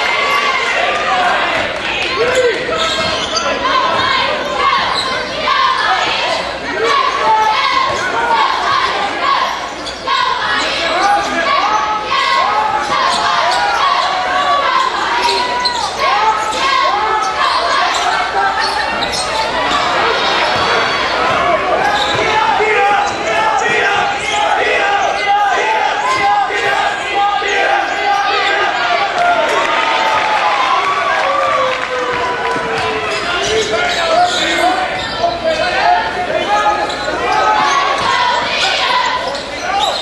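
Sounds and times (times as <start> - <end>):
sneaker squeaks on floor: 2.3 - 4.0, 4.8 - 5.3, 9.5 - 11.9, 14.8 - 25.2, 36.4 - 40.0.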